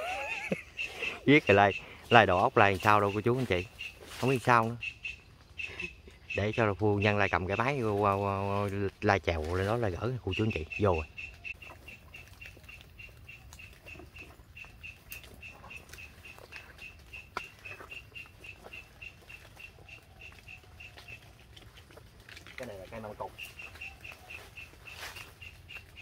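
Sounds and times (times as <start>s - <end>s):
branches clicking and rustling: 0.0s - 26.0s
small bird pipping call: 0.2s - 7.9s, 9.6s - 21.3s, 22.6s - 26.0s.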